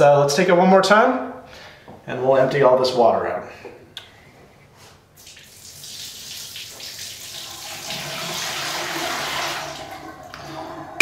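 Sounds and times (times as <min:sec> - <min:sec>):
water pouring into sink: 0:05.2 - 0:11.0.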